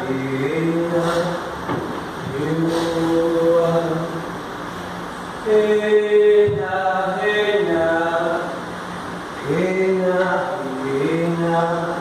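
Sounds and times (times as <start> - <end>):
man chanting in long held notes: 0.0 - 1.6, 2.2 - 4.4, 5.4 - 8.6, 9.4 - 12.0.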